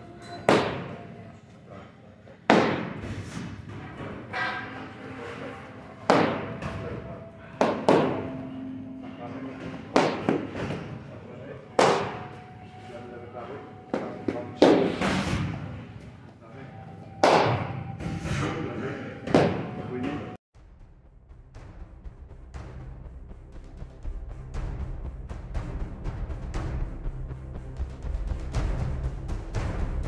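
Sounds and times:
faint background music: 0.0 - 20.4.

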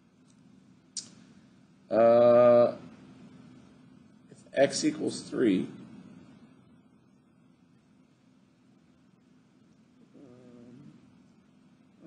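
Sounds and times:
low background hum: 0.0 - 12.0
faint vocal sound: 1.9 - 2.8, 10.0 - 11.1.

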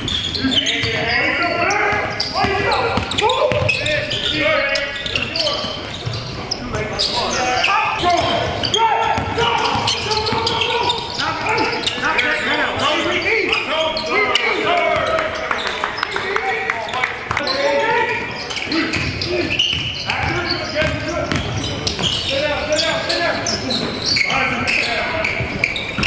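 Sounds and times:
players calling out: 0.0 - 26.0.

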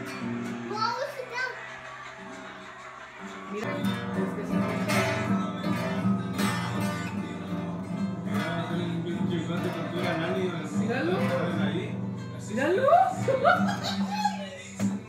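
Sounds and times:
acoustic guitar strumming: 0.0 - 15.0.

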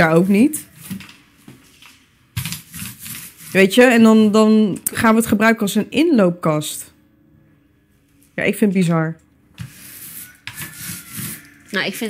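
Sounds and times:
rubbing rustling noise: 0.0 - 4.2, 9.6 - 11.6.

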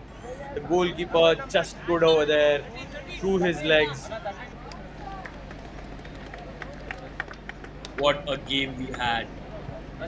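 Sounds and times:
distant voices of players: 0.0 - 10.0.

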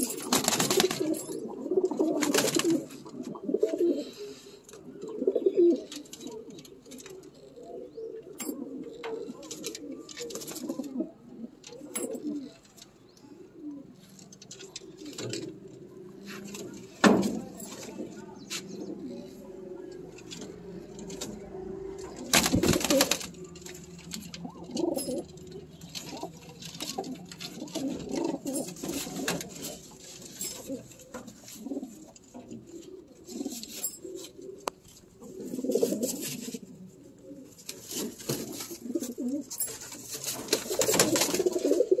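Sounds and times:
pigeons cooing: 0.0 - 42.0.

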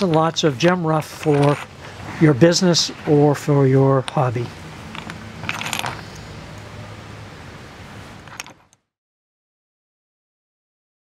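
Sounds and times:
low steady hum: 0.0 - 8.8
stones clicking together: 4.9 - 6.0, 8.3 - 8.8.

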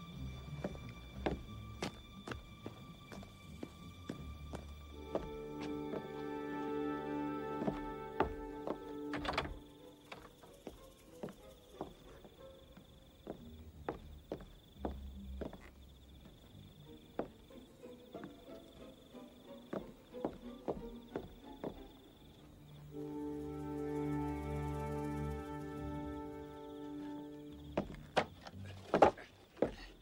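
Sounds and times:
film score music: 0.0 - 30.0
footsteps on wooden boardwalk: 0.3 - 18.8, 19.4 - 22.3, 27.6 - 30.0.

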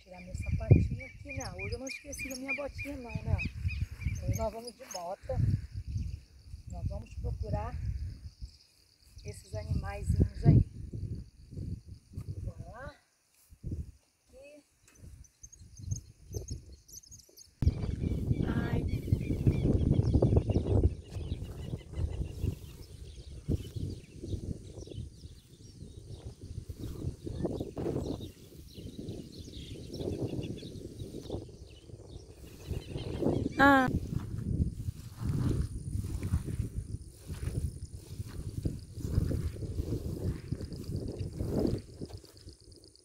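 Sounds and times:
wind buffeting microphone: 0.0 - 12.9, 13.5 - 14.0, 15.0 - 43.0.

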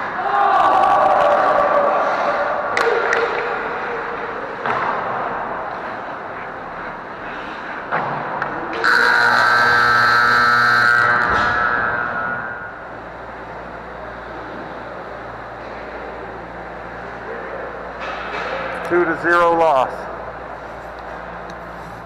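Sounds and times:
low rink hum: 0.0 - 22.0
arena game horn blast: 8.8 - 12.7.

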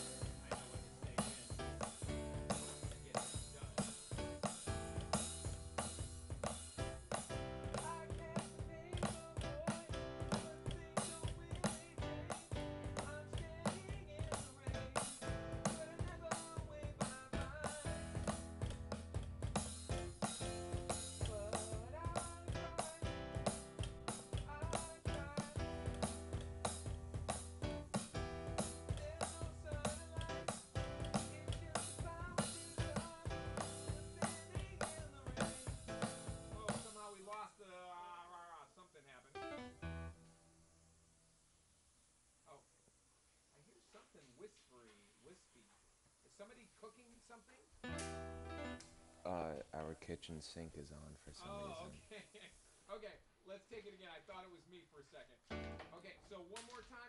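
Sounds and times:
person singing: 0.0 - 4.4, 7.7 - 18.5, 21.1 - 23.7, 24.3 - 26.2, 28.5 - 37.0
keyboards bass line: 0.0 - 36.8, 47.8 - 49.4, 55.5 - 55.9
drum kit beat: 0.0 - 37.3, 51.4 - 51.9, 55.5 - 55.9.

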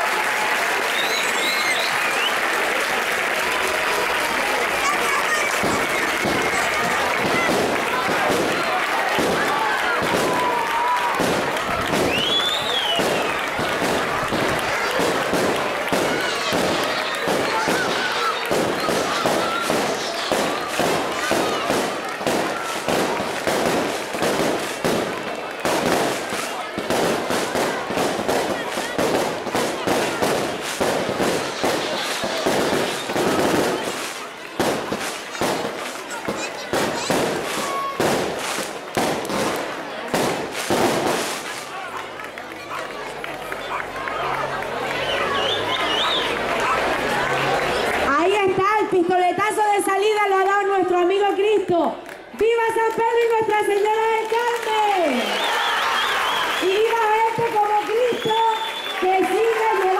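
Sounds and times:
crowd applauding: 0.0 - 48.6, 51.9 - 59.9
crowd voices: 0.0 - 59.9
whistle-like call: 0.9 - 2.4, 12.1 - 13.3, 45.1 - 46.3, 55.3 - 56.6, 58.2 - 59.0.

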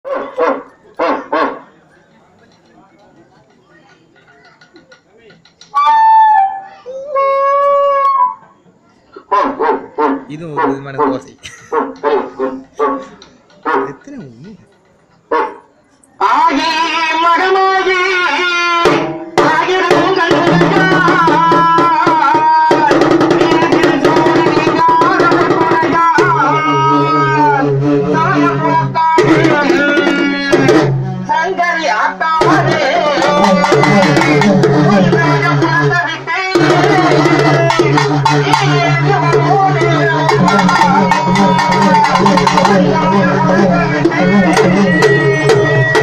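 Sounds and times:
stick-beaten drums: 10.1 - 15.2, 16.5 - 46.0.

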